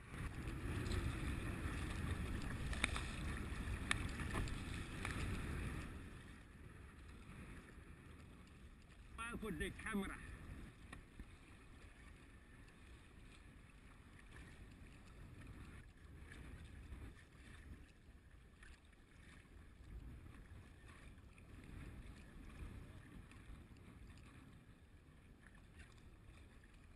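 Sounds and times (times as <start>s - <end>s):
wind on microphone: 0.0s - 6.3s
paddle blades splashing: 0.0s - 26.9s
rumble of water: 0.0s - 26.9s.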